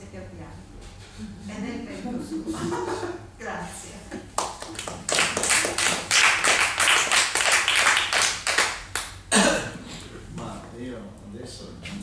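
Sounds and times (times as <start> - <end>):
audience applauding: 4.4 - 9.1.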